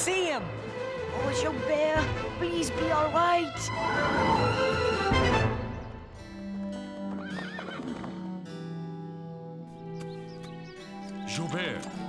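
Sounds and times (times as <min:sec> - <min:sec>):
background music held notes: 0:00.0 - 0:12.0
horse whinnying: 0:03.7 - 0:05.5, 0:07.1 - 0:08.3.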